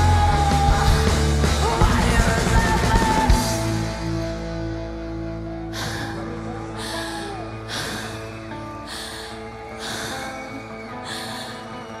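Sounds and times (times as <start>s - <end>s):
electric guitar and bass notes: 0.0s - 12.0s
singer breathing into microphone: 5.7s - 11.8s.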